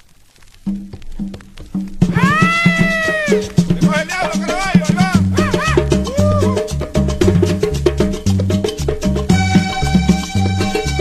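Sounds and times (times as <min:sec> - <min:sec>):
steady drum beat: 0:00.7 - 0:11.0.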